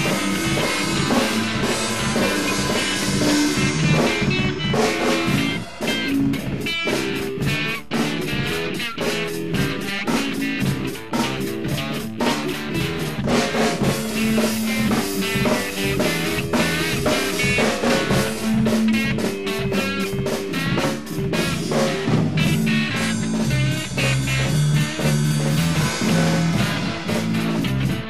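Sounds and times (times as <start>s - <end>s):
drum kit beat: 0.0s - 28.0s
guitar: 0.0s - 28.0s.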